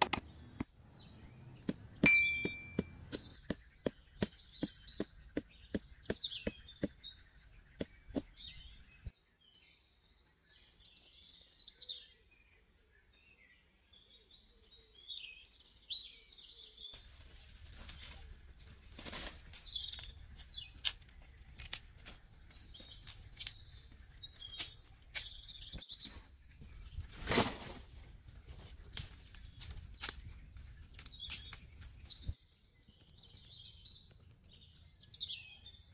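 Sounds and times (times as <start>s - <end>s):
small birds chirping: 0.0s - 35.9s
stone pounding wooden stake: 1.6s - 7.0s, 7.7s - 8.4s.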